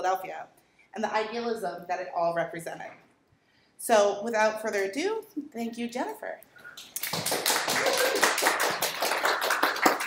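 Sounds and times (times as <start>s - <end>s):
audience applauding: 6.8s - 10.0s.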